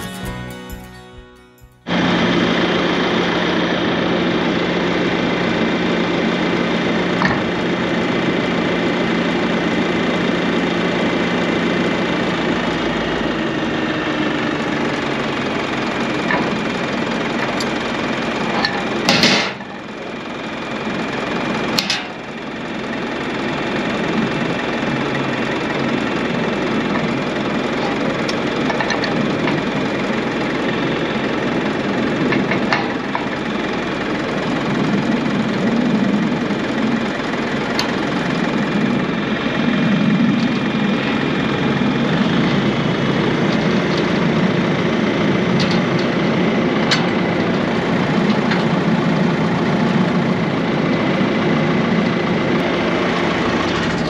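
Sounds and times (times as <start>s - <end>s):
tractor diesel engine idling: 1.9s - 54.0s.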